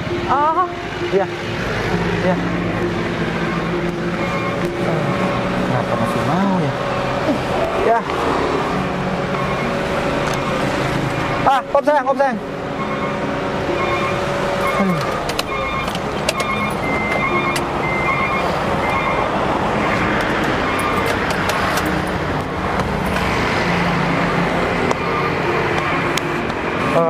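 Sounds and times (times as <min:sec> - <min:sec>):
background music: 0:00.0 - 0:07.6
busy street traffic: 0:00.0 - 0:27.0
cars and motorbikes passing: 0:00.0 - 0:27.0.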